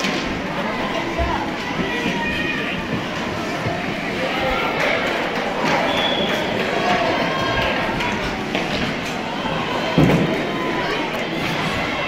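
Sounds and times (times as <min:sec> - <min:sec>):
hockey play on ice: 0:00.0 - 0:12.0
spectators' voices: 0:00.0 - 0:12.0.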